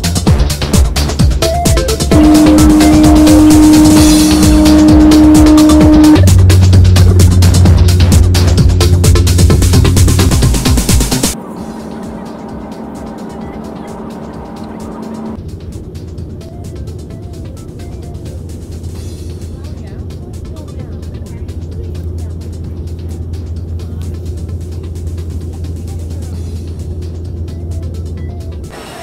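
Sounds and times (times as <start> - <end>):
airliner engine rumble: 0.0 - 29.0
steady tones: 0.8 - 27.6.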